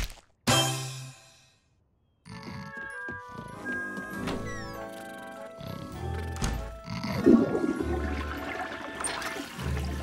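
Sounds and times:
cartoon toilet flush: 7.1s - 10.0s.

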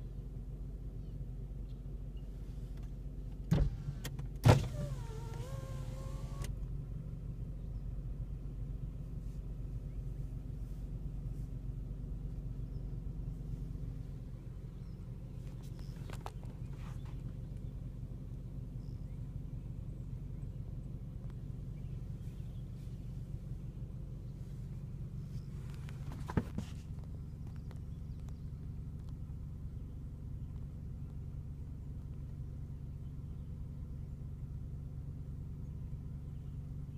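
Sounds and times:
car engine and road hum: 0.0s - 36.9s.

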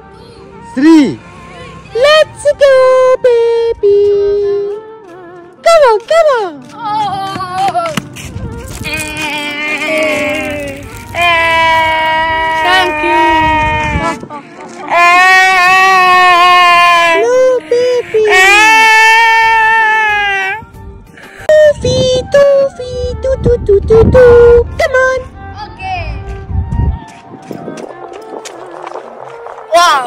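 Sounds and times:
person singing long notes: 8.7s - 20.6s.

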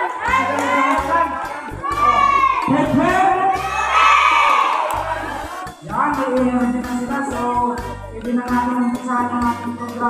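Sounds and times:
children calling in unison: 1.8s - 2.8s, 3.5s - 5.4s.

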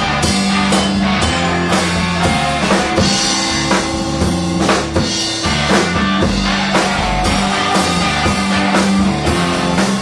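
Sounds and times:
blues-rock band playing: 0.0s - 10.0s
drum kit steady beat: 0.0s - 10.0s.

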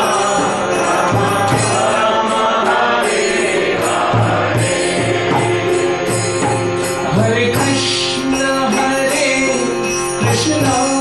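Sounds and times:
voices chanting together: 0.0s - 7.0s
harmonium chords: 0.0s - 11.0s.

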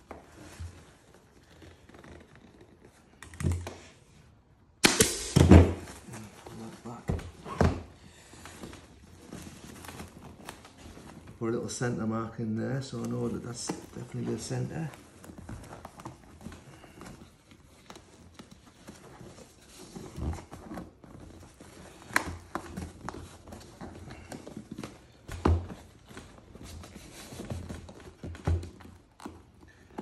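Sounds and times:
vinyl rustling: 0.0s - 30.0s.

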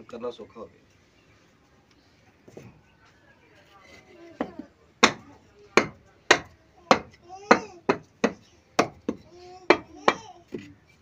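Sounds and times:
bricks knocking together: 4.4s - 5.2s, 5.8s - 10.7s.

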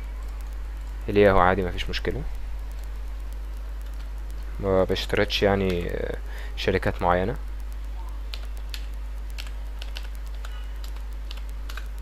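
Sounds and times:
keyboard typing clicks: 0.0s - 12.0s
steady low hum: 0.0s - 12.0s.

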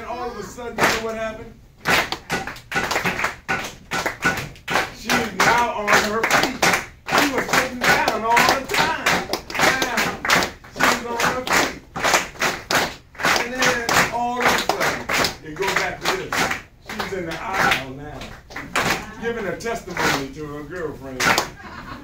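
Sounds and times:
hands clapping a steady beat: 0.8s - 21.6s.

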